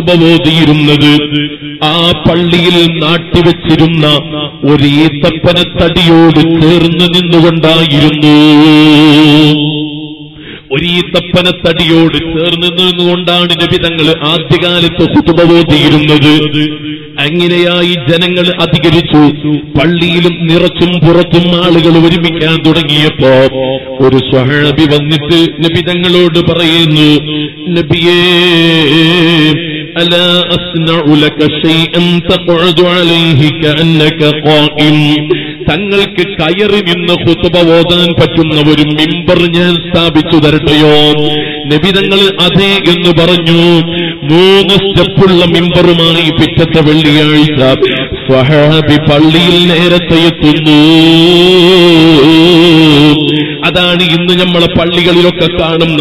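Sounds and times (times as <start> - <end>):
man chanting: 0.0 - 56.0.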